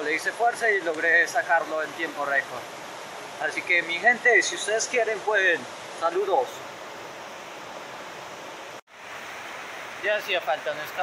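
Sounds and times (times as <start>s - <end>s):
fast river rushing: 0.0s - 11.0s.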